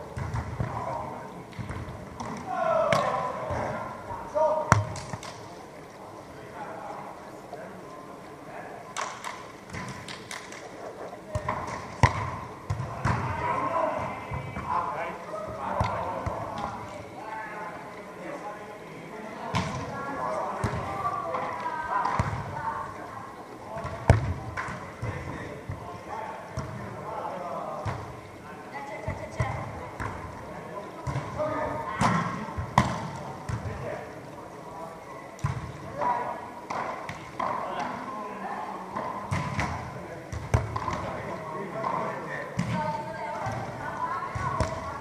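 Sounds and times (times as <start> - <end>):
volleyballs slapped by hands: 4.7 - 5.5, 11.3 - 13.4, 23.8 - 25.8, 32.0 - 33.8, 39.0 - 41.2.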